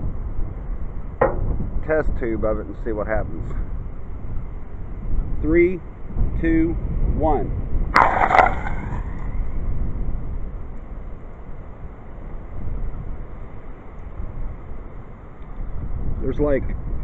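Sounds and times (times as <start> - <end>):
wind rumble on microphone: 0.0 - 17.0.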